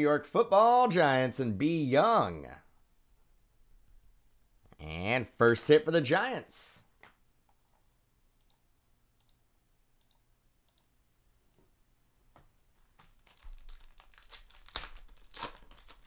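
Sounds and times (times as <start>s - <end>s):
foil wrapper tearing and crinkling: 13.0s - 16.0s.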